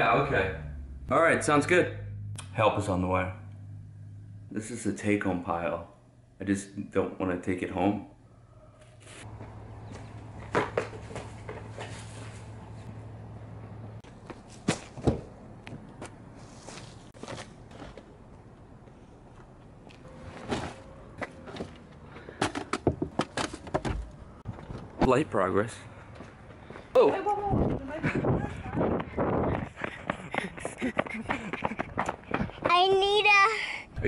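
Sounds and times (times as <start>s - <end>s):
steady low hum: 0.0s - 8.6s
knocks and thuds of items: 20.5s - 24.8s.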